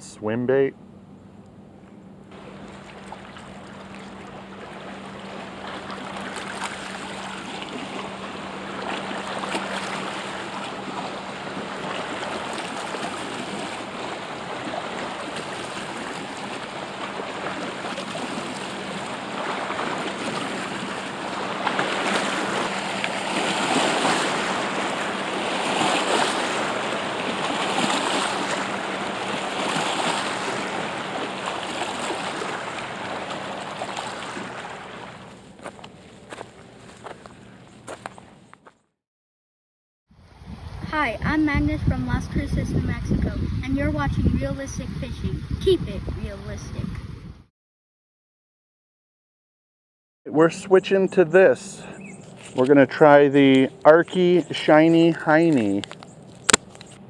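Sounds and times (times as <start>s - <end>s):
creek water rushing: 2.4s - 35.3s.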